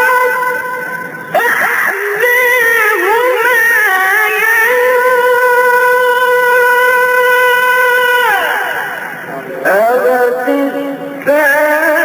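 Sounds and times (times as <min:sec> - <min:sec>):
man reciting in melismatic chant: 0:00.0 - 0:12.0.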